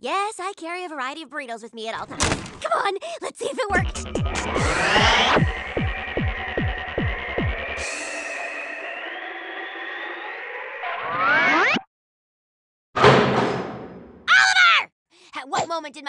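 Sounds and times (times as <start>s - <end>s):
rising sweep: 3.8s - 11.8s
rising whine: 3.8s - 11.9s.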